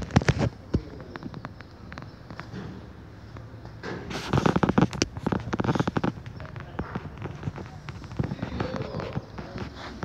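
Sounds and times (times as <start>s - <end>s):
sharp cracks and pops: 0.0s - 2.6s, 3.3s - 10.0s
faint voices: 0.0s - 4.6s, 5.2s - 10.0s.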